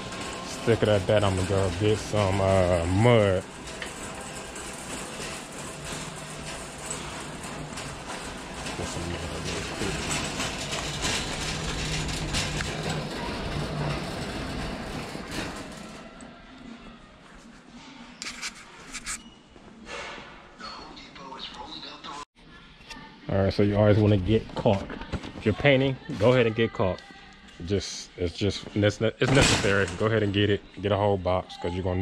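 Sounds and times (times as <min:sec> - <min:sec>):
shopping cart rolling on concrete: 0:00.0 - 0:16.4.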